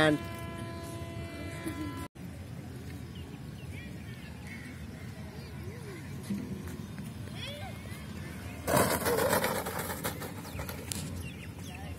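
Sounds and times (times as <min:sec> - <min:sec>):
foam plane scraping across dirt: 0:08.6 - 0:11.3.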